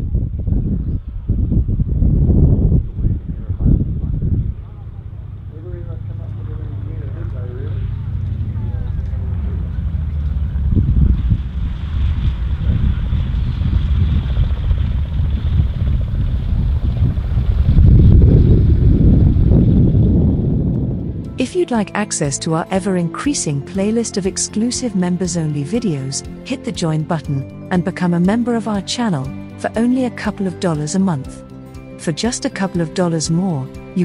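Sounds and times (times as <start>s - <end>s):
wind on microphone: 0.0s - 6.1s, 7.8s - 21.4s
propeller aircraft engine drone: 3.2s - 13.6s, 14.4s - 30.2s.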